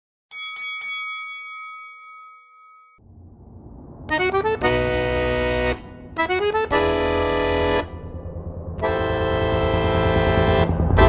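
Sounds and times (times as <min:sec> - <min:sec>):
bell-like chime ringing: 0:00.3 - 0:03.0.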